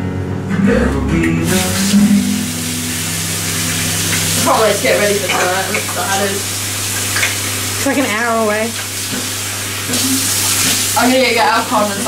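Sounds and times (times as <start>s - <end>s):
steady low hum: 0.0s - 6.9s
tap water running into sink: 1.4s - 12.0s
hands rinsing under water: 1.5s - 7.8s.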